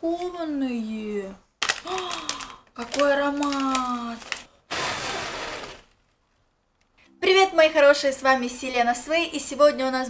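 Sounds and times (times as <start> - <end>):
person blowing breath: 4.6 - 5.8.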